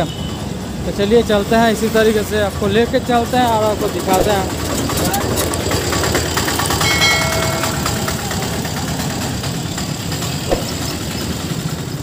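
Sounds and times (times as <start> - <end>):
auto-rickshaw engine: 0.0 - 12.0
scooter engines passing: 0.3 - 12.0
brief knock: 10.5 - 10.9.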